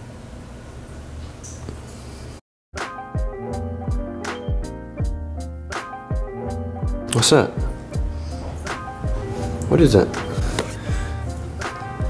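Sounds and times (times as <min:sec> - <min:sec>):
slow instrumental beat: 0:02.8 - 0:12.0
drum hits: 0:07.6 - 0:12.0.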